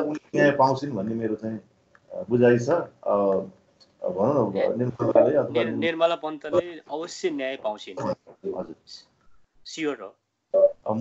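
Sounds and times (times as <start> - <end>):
man speaking: 0.0 - 9.0, 9.7 - 11.0.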